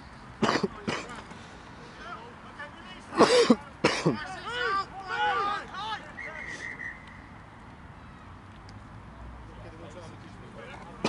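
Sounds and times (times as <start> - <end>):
person coughing: 3.2 - 4.2.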